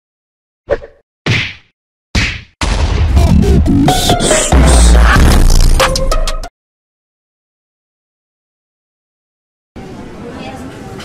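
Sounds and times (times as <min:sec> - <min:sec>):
sharp impact sound effects: 0:02.2 - 0:06.3.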